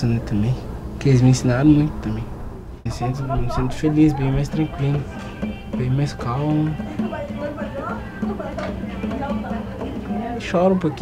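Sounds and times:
person's voice: 2.9s - 9.5s.

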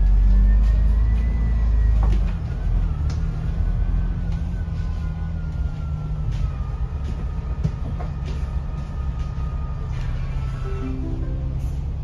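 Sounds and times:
bus engine and road rumble: 0.0s - 12.0s.

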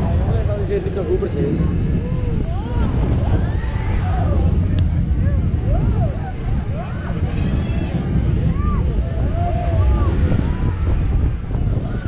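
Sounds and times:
roller coaster chain lift rumble: 0.0s - 12.0s.

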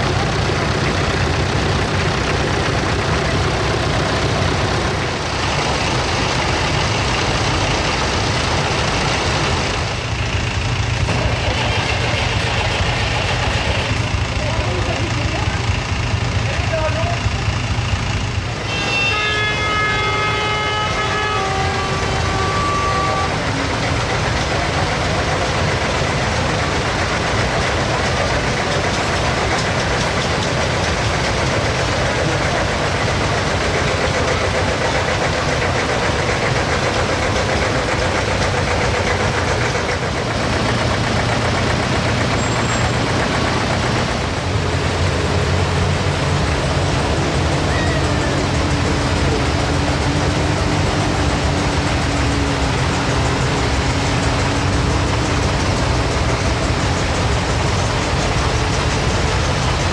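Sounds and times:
lower tractor engine note: 0.0s - 59.9s
tractor engines running: 0.0s - 59.9s.

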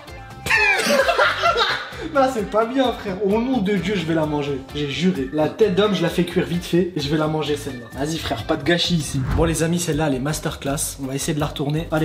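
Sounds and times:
background music: 0.0s - 12.0s
laughter: 0.4s - 2.1s.

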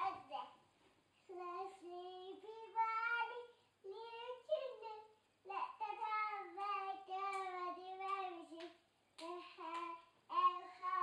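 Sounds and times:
young child singing: 0.0s - 0.6s, 1.2s - 11.0s.

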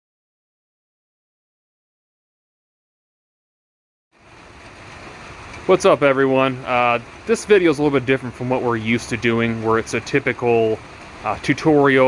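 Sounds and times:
background hiss with low rumble: 4.2s - 12.0s.

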